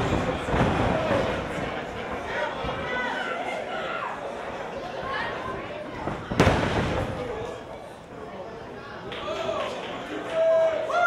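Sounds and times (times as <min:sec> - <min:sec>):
crowd chatter in a hall: 0:00.0 - 0:11.0.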